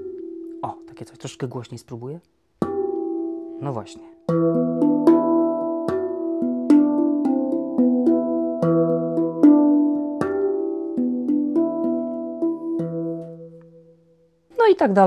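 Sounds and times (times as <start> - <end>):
handpan played by hand: 0.0 - 1.2, 2.6 - 14.2.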